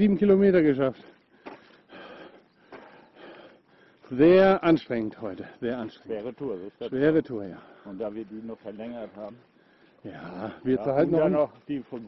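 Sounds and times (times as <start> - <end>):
person breathing hard: 1.3 - 4.1.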